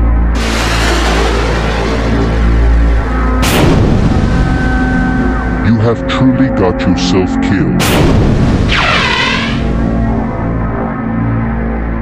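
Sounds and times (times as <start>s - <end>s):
sweeping tone: 0.0s - 5.6s
dark background music: 0.0s - 12.0s
boom sound effect: 0.3s - 5.6s, 7.8s - 9.8s.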